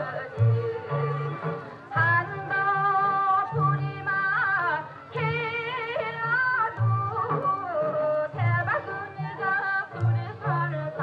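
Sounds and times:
woman singing wavering melody: 0:00.0 - 0:11.0.

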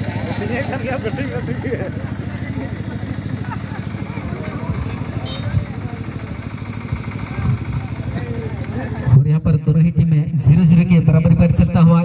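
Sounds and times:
faint voices: 0:00.0 - 0:09.2.

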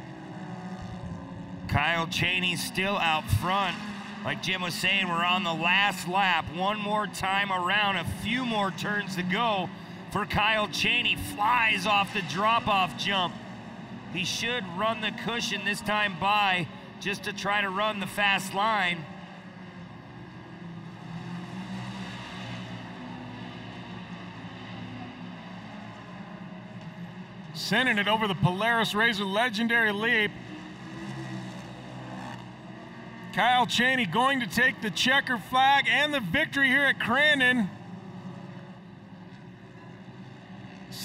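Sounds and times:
race engine drone: 0:00.0 - 0:41.0.

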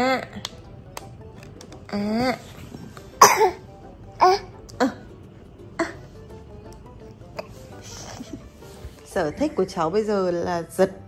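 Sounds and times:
baby coughing: 0:03.2 - 0:05.0.

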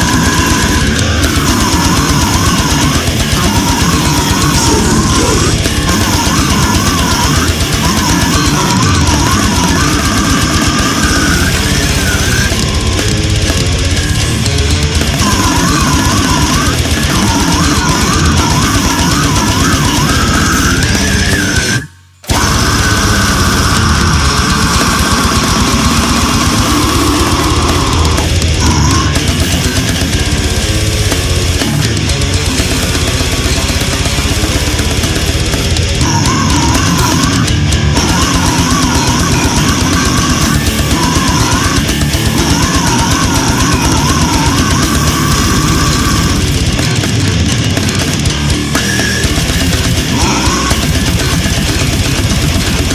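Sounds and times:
distorted electric guitars: 0:00.0 - 0:52.9
fast dense drumming: 0:00.0 - 0:52.9.

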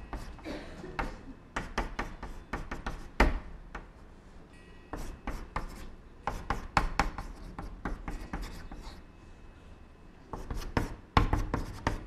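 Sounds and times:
chalk tapping and scraping on blackboard: 0:00.0 - 0:00.4, 0:01.0 - 0:03.9, 0:04.9 - 0:09.0, 0:10.3 - 0:12.0.

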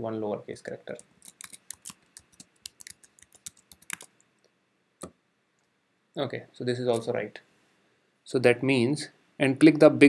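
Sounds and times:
keyboard typing clicks: 0:01.3 - 0:04.1.

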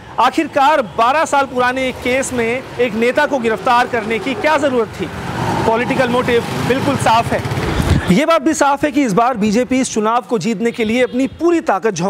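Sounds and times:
small vehicle engine rumbling: 0:00.0 - 0:08.1
man's voice: 0:00.2 - 0:05.1, 0:05.7 - 0:12.0.

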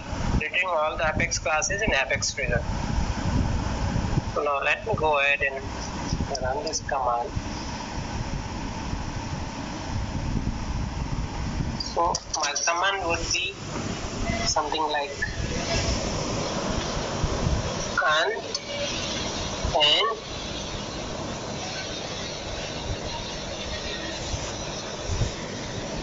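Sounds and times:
steady background noise: 0:00.0 - 0:26.0
person speaking: 0:00.4 - 0:02.7, 0:04.4 - 0:07.4, 0:11.8 - 0:13.6, 0:14.2 - 0:16.8, 0:17.9 - 0:20.3
even hiss: 0:11.6 - 0:26.0.

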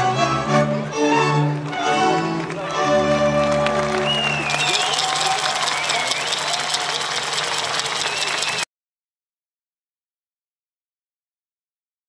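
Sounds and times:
audience applause: 0:01.4 - 0:08.7
high calls from audience: 0:03.9 - 0:08.6.

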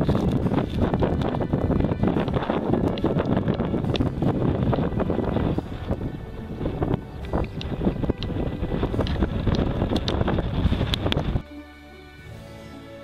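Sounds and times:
wind buffeting microphone: 0:00.0 - 0:11.5.

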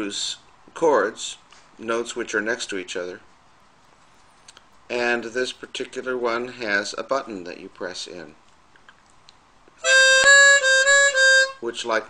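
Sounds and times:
harmonica held note: 0:09.8 - 0:11.6.

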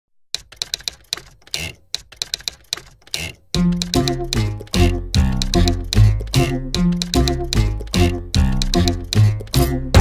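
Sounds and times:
typewriter rasping: 0:00.3 - 0:09.6
typewriter keys clacking: 0:00.3 - 0:09.7.

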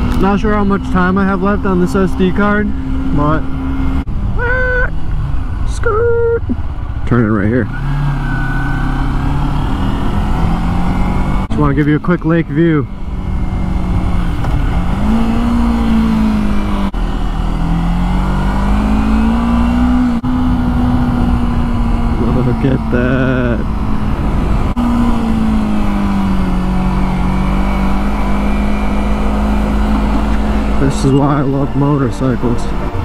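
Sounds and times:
low wind rumble: 0:00.0 - 0:33.0
motorcycle engine cruising: 0:00.0 - 0:33.0.

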